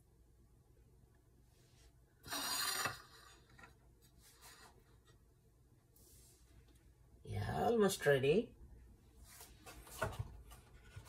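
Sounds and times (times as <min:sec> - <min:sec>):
soft rubbing: 0:05.9 - 0:06.7.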